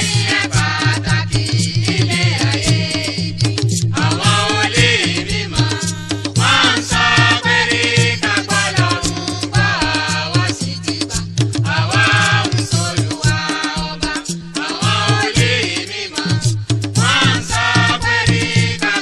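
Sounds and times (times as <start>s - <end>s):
steady percussion beat: 0.0s - 19.0s.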